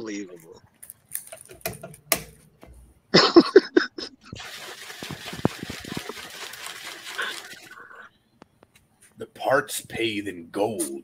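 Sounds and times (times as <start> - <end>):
desk handling clicks and knocks: 1.2 - 2.8.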